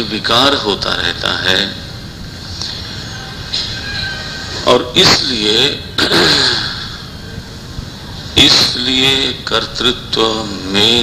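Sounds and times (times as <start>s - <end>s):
background recording hiss: 0.0s - 11.0s
man's voice: 8.4s - 11.0s.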